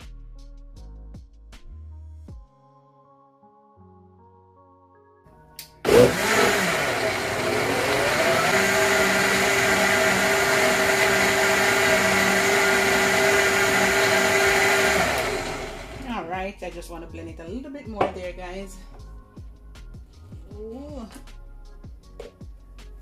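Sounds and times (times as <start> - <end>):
blender motor running: 5.8 - 16.2.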